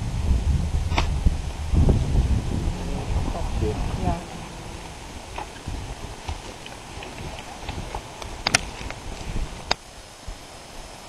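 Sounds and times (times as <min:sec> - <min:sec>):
low outdoor rumble: 0:00.0 - 0:09.7.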